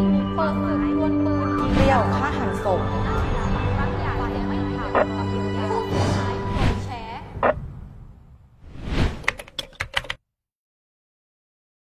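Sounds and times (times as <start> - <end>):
swish: 5.9 - 9.4
sharp typing-like clicks: 9.2 - 10.2.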